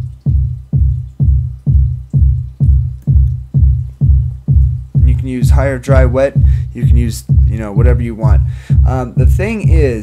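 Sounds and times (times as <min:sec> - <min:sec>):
electronic kick drum beat: 0:00.0 - 0:10.0.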